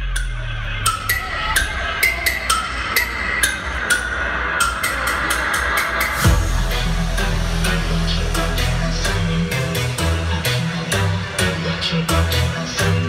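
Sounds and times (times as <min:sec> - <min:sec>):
loud electronic dance music: 0:00.0 - 0:13.0.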